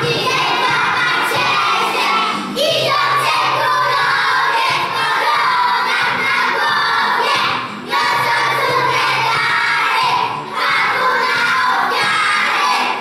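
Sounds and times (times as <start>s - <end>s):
children singing together: 0.0s - 13.0s.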